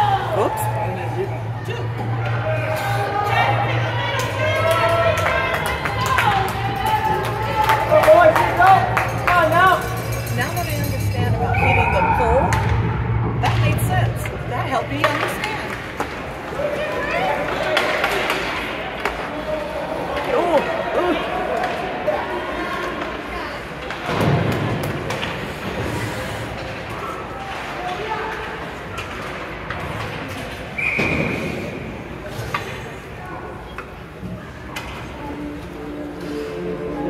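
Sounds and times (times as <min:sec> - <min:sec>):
referee's whistle: 0:30.8 - 0:31.6.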